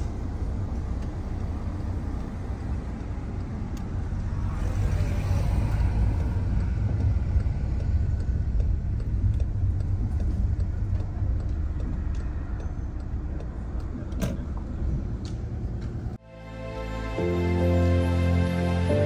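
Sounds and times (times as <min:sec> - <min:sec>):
car road and engine rumble: 0:00.0 - 0:19.0.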